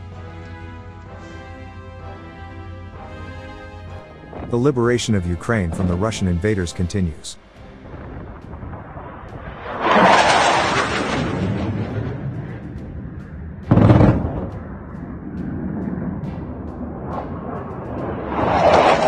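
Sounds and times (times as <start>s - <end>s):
jet engine roar: 4.0s - 19.0s
explosion bang with rumble: 7.8s - 19.0s.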